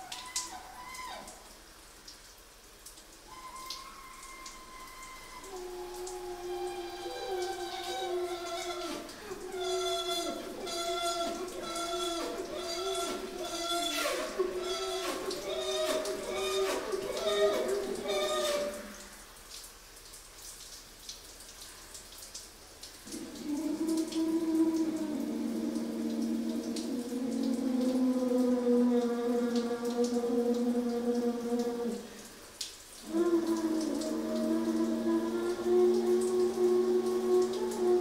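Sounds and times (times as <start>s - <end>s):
trumpet playing long held notes: 3.3s - 19.0s.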